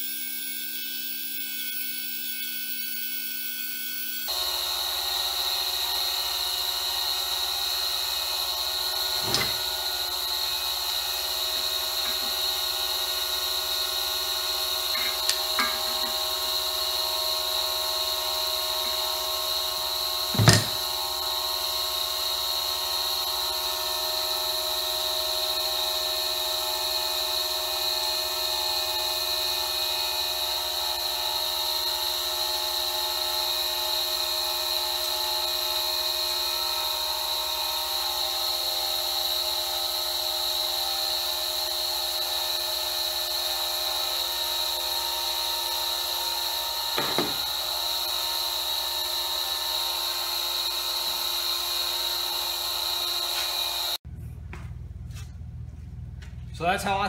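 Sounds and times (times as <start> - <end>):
power tool whine: 0.0 - 54.0
loud thump: 9.2 - 9.8, 20.3 - 20.8, 47.0 - 47.5.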